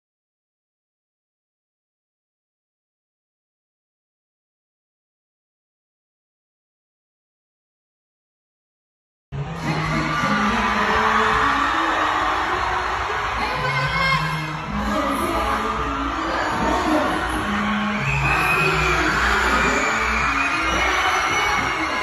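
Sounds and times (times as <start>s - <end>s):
dancehall music with bass line: 9.4s - 22.0s
woman singing into microphone: 9.6s - 22.0s.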